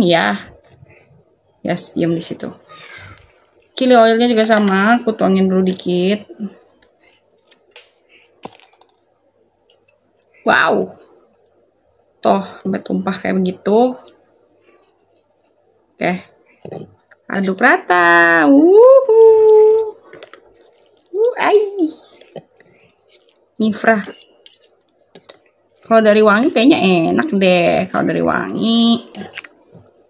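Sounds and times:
plastic crinkling: 2.3s - 10.5s, 18.9s - 30.0s
woman exclaiming ooh: 18.5s - 19.9s.

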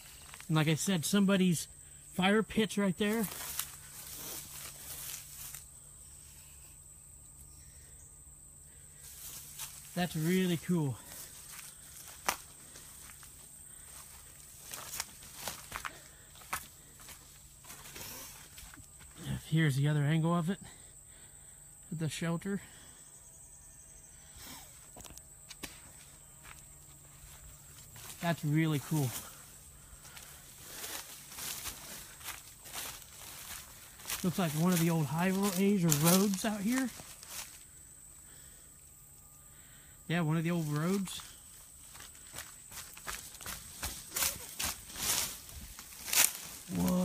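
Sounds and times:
high-pitched insect drone: 0.0s - 47.0s
footsteps rustling through grass: 2.9s - 5.8s, 9.0s - 19.3s, 24.9s - 37.9s, 40.6s - 47.0s.

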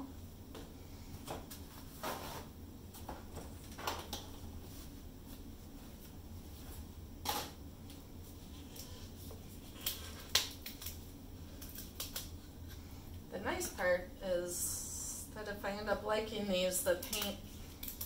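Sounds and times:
low steady hum: 0.0s - 18.0s.

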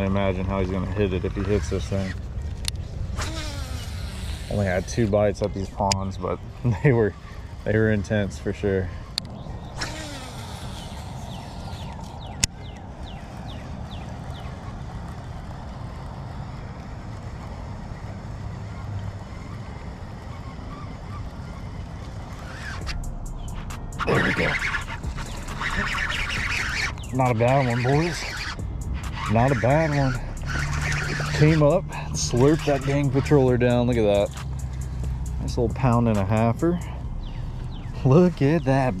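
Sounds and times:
wind rumble on microphone: 0.0s - 39.0s.

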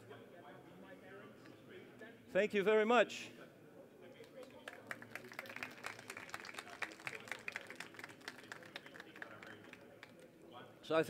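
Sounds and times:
audience applause: 4.7s - 10.1s.

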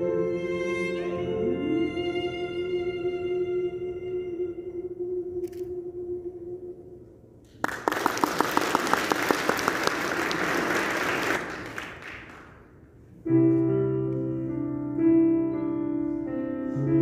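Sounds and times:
audience applause: 7.6s - 12.5s.

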